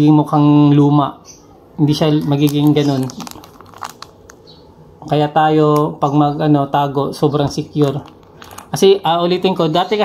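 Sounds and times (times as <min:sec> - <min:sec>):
plastic bags crinkling: 0:02.0 - 0:04.6, 0:07.6 - 0:09.0.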